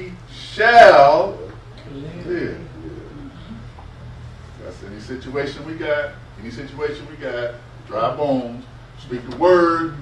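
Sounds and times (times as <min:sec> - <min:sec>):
steady low hum: 0:00.0 - 0:10.0
person murmuring: 0:01.9 - 0:03.7.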